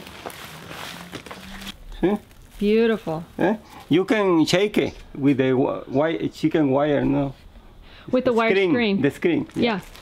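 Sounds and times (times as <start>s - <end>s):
hands rustling dry leaves: 0.0s - 4.2s.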